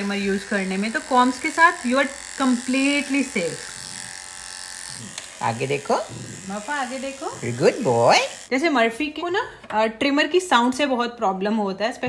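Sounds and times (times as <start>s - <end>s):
electric hair trimmer buzzing: 0.0s - 8.5s.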